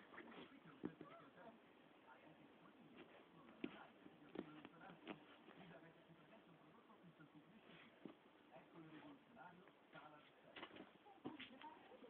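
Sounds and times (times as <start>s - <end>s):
faint background speech: 0.0s - 12.0s.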